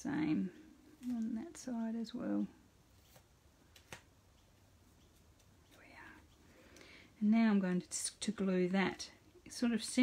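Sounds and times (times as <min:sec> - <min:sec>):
soft murmur or breath: 0:05.9 - 0:07.2.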